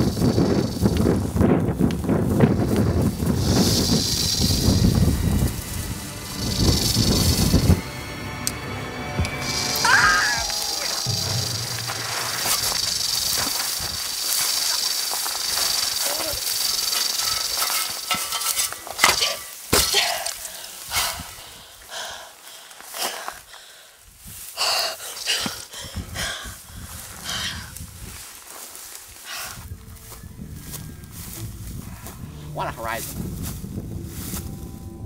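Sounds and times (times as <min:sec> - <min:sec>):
wind rumble on microphone: 0:00.0 - 0:08.2, 0:25.8 - 0:35.0
snake hissing: 0:00.0 - 0:08.6, 0:09.2 - 0:19.4, 0:24.5 - 0:27.7.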